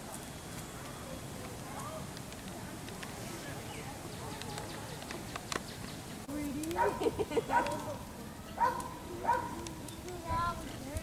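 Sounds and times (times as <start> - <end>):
person laughing: 7.0 - 7.6.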